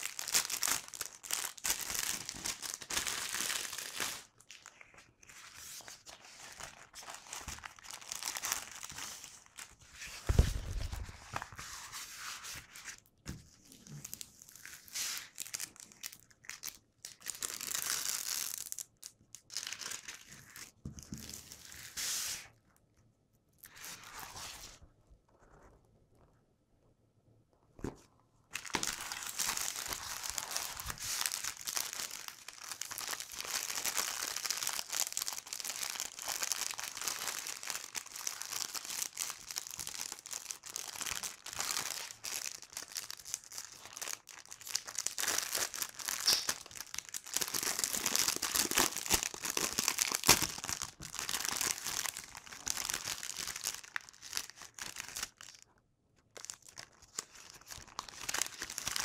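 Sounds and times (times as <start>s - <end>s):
plastic packaging crinkling: 0.0s - 5.2s, 5.8s - 11.6s, 13.7s - 21.6s, 27.8s - 55.7s, 56.3s - 59.0s.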